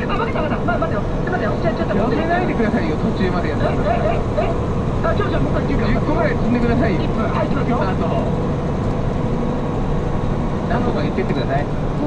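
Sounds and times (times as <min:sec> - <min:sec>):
voices talking: 0:00.0 - 0:08.4
truck engine drone: 0:00.0 - 0:12.0.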